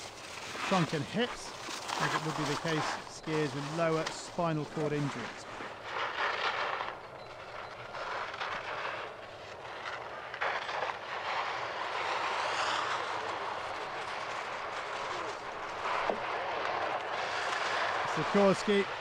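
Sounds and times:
ski edge scraping snow: 0.0s - 19.0s.

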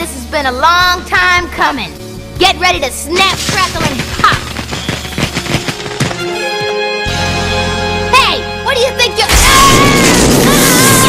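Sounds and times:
crackling electric zaps: 3.2s - 6.2s.

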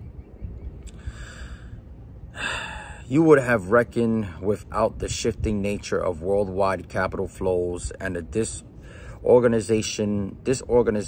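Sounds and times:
man breathing: 0.9s - 3.1s, 8.8s - 9.2s.

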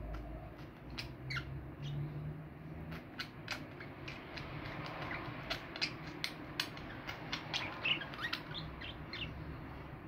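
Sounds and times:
budgerigars chattering: 2.9s - 9.5s.

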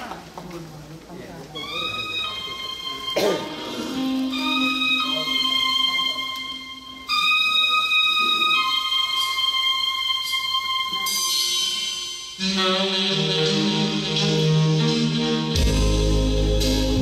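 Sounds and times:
backing accompaniment: 1.6s - 17.0s
saxophone slow melody: 1.6s - 17.0s.

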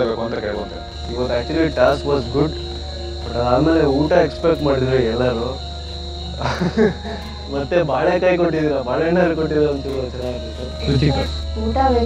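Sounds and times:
crickets trilling: 0.0s - 12.0s.

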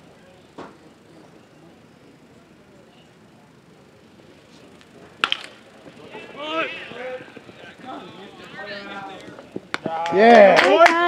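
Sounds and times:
bat hitting baseball: 5.2s - 5.6s
spectators shouting: 6.0s - 11.0s.

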